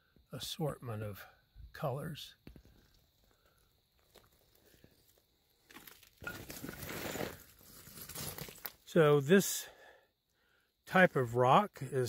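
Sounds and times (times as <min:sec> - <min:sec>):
footsteps crunching on gravel: 0:04.0 - 0:08.8.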